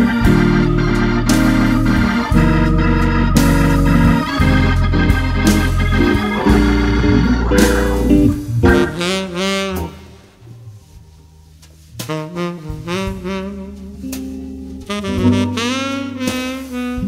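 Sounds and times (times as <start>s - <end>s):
hammond organ sustained chords: 0.0s - 10.9s
deep bass line: 2.3s - 14.1s.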